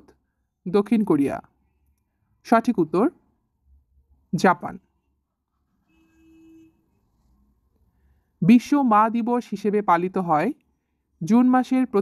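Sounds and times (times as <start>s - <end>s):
faint steady tone: 3.2s - 8.5s.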